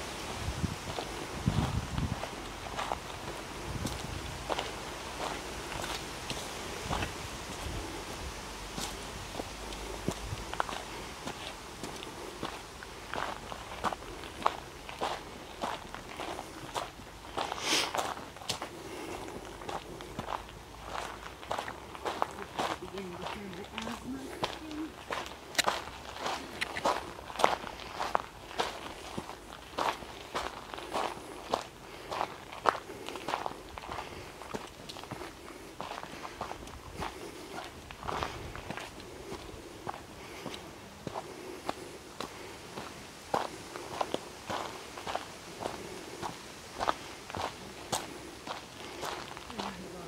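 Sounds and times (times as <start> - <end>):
footsteps on dirt trail: 0.0 - 50.0.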